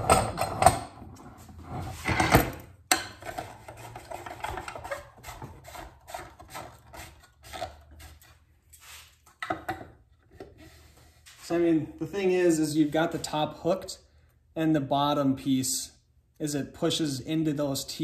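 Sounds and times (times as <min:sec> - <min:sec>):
metal clinks and knocks: 0:00.0 - 0:01.2.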